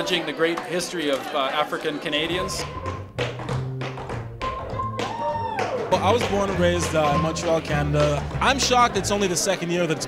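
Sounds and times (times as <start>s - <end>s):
upright bass line: 2.2s - 9.5s.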